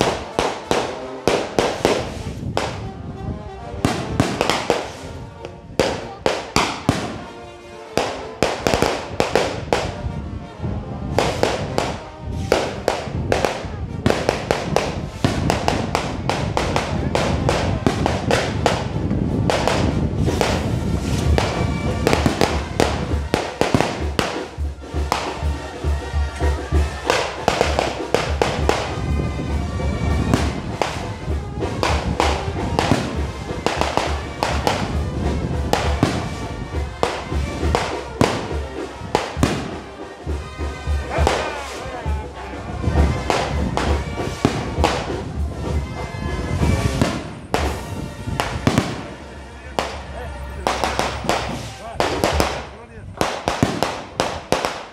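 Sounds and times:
firecrackers banging: 0.0s - 54.9s
music with low beat: 3.8s - 7.3s, 10.8s - 54.6s.

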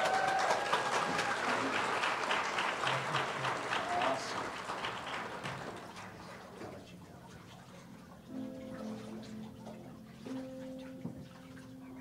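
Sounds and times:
voices cheering: 0.0s - 4.5s
congregation applauding: 0.0s - 6.4s.

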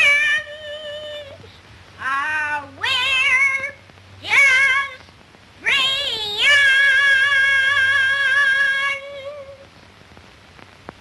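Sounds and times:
small child singing: 0.0s - 9.6s.

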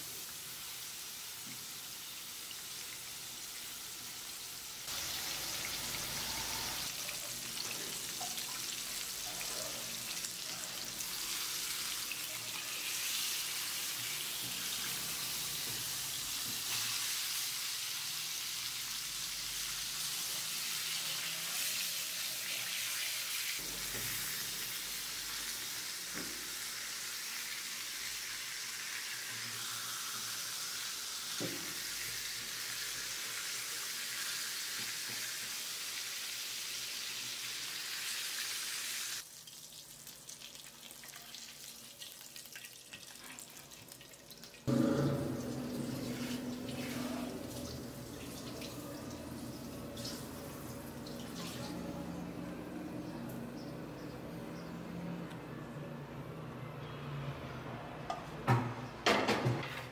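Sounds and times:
meat sizzling in a frying pan: 0.0s - 42.2s.

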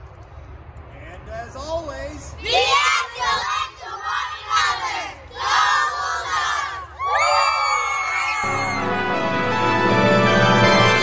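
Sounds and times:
children shouting: 2.5s - 9.0s
children cheering: 6.4s - 9.2s.

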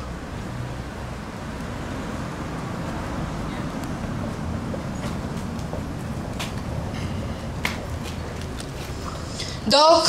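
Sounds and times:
low outdoor rumble: 0.0s - 10.0s
footsteps on paving stones: 4.3s - 6.8s, 7.6s - 9.2s.

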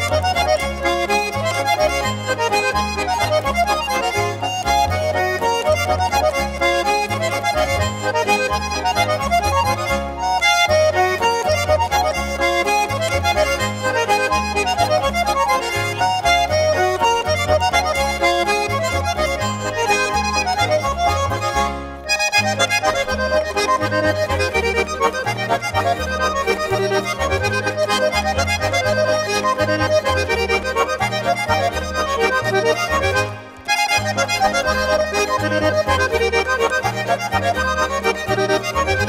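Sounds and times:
button accordions playing folk dance: 0.0s - 39.0s.

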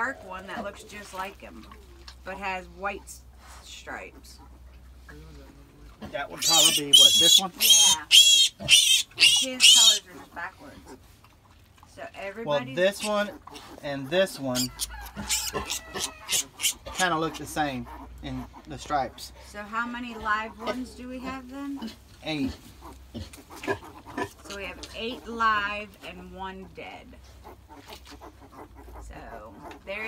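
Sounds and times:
pigs grunting softly: 13.0s - 25.1s.

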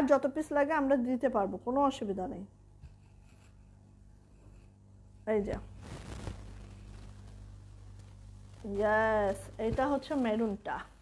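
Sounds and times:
low electrical hum: 0.0s - 11.0s
cloth dress rustling: 5.4s - 10.9s.

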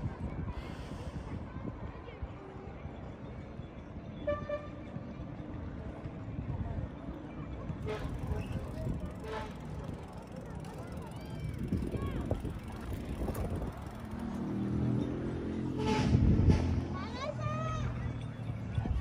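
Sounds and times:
passers-by talking and calling: 0.0s - 19.0s.

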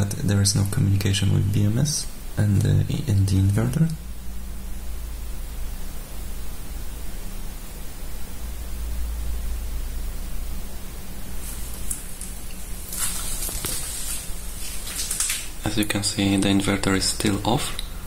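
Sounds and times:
low background hum: 0.0s - 18.0s
rustling: 11.3s - 15.7s.

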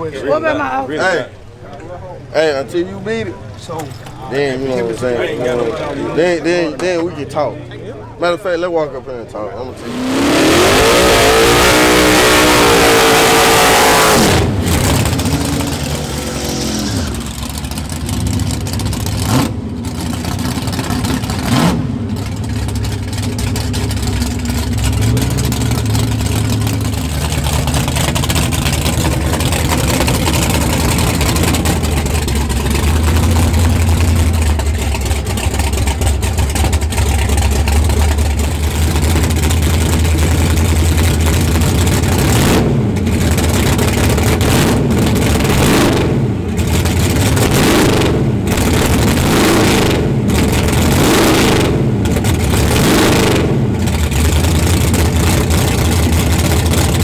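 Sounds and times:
car engine idling: 0.0s - 57.0s
engine revving: 9.8s - 57.0s.

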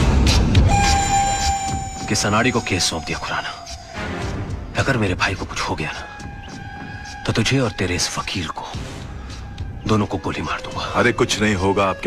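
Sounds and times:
dramatic film score: 0.0s - 12.0s
held high note: 0.7s - 4.0s.

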